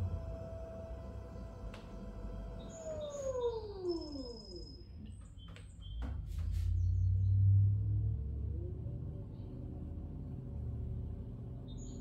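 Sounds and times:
pottery wheel motor whine: 0.0 - 4.9.

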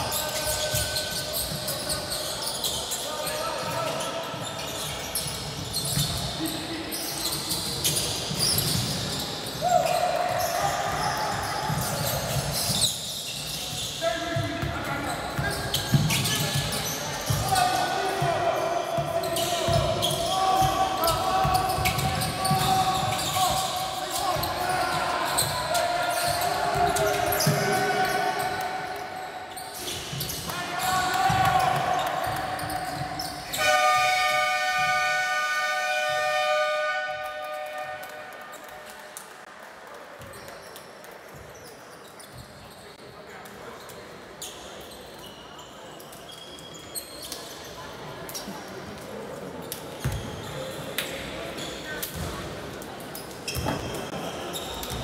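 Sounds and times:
voices across the hall: 0.0 - 55.0
shoe squeaks: 0.1 - 34.0, 40.3 - 43.1, 43.8 - 48.5, 50.0 - 50.8, 53.1 - 55.0.

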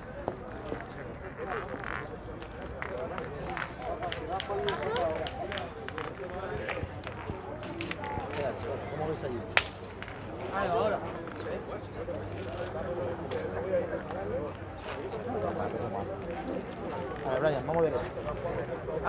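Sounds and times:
background voices talking: 0.0 - 19.0.

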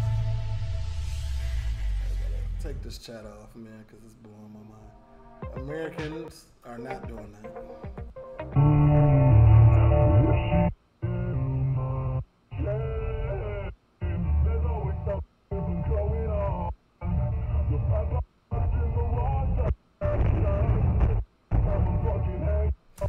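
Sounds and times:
muffled song on car stereo: 6.9 - 23.0.

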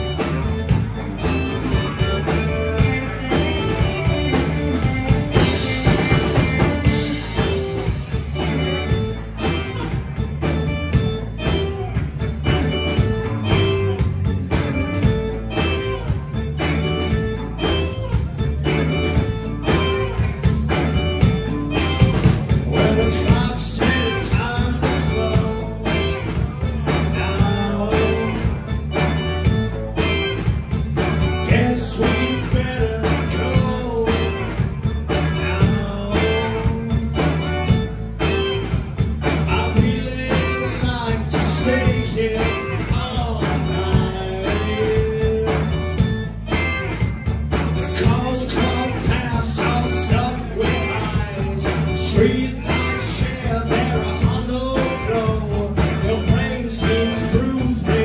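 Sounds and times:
drum kit beat: 0.0 - 58.0
electric guitars: 0.0 - 58.0
electric organ: 0.0 - 58.0.

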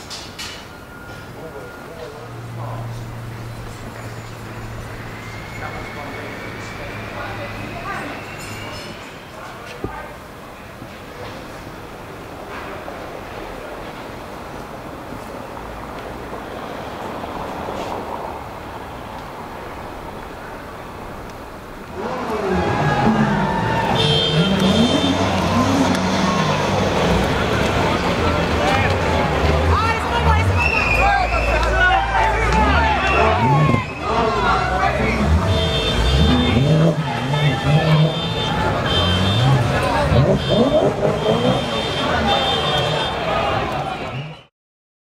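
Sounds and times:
street and crowd noise: 0.0 - 44.5
car engine revving: 21.8 - 43.8.

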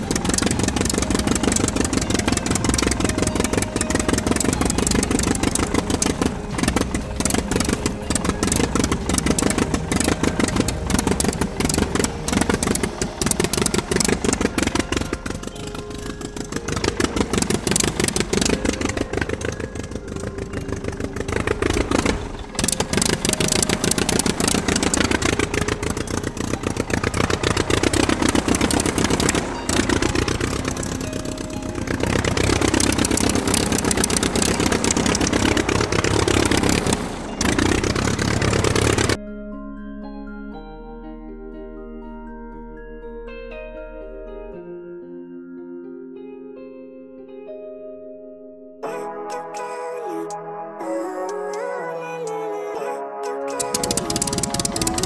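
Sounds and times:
model locomotive engine clattering: 0.0 - 39.2, 53.6 - 55.0.

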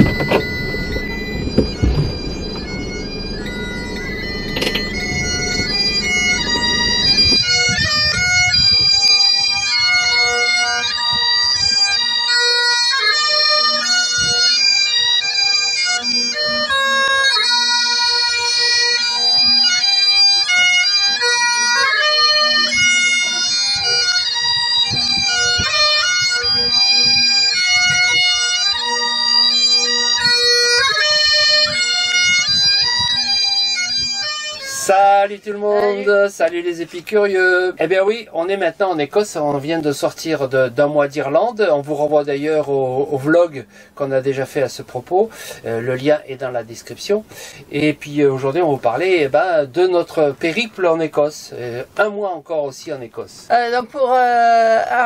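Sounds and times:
low rumble: 0.0 - 8.9
bagpipe melody with drone: 0.0 - 36.2.

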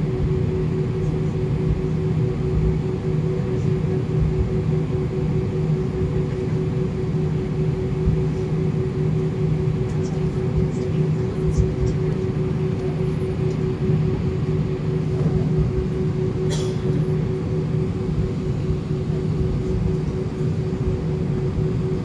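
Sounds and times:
airliner cabin drone: 0.0 - 22.0.

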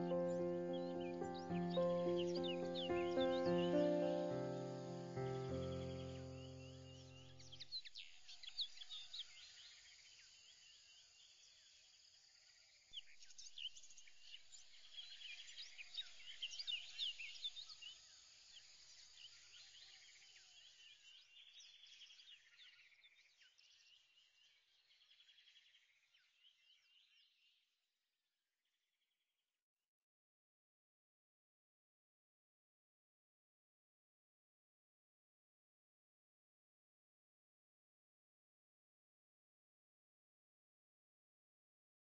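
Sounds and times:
birds chirping: 0.0 - 9.1.

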